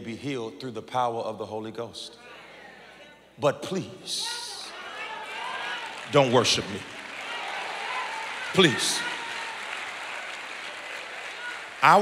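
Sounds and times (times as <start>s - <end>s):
congregation applauding: 4.6s - 12.0s.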